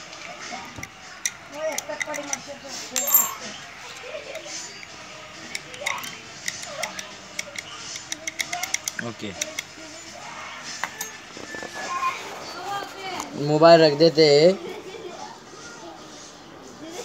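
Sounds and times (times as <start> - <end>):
padlock and key clicking: 3.0 - 3.4, 5.4 - 9.7
key clinking on concrete: 3.0 - 3.6, 10.9 - 11.2.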